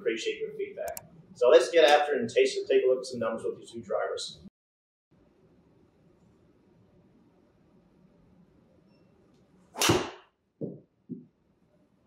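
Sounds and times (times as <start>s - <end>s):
golf club striking ball: 9.8s - 10.2s.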